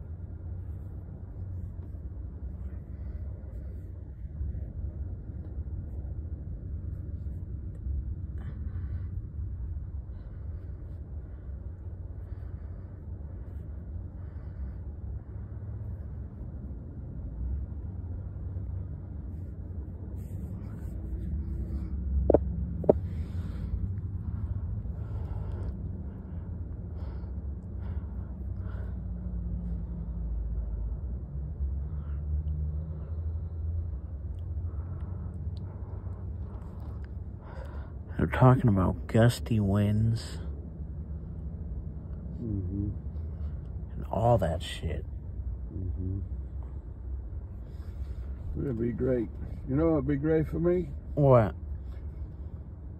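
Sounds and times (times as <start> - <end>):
car engine idling inside cabin: 0.0 - 52.9.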